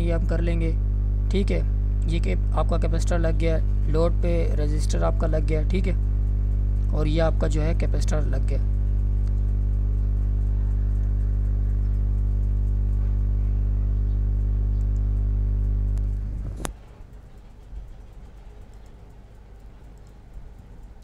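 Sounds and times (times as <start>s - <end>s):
low electrical hum with buzz: 0.0s - 21.0s
sharp click: 1.4s - 21.0s.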